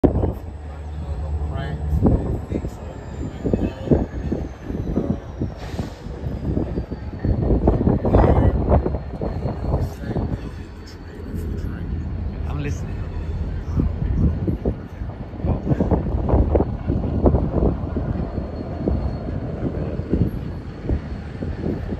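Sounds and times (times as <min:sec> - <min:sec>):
train low rumble: 0:00.0 - 0:21.9.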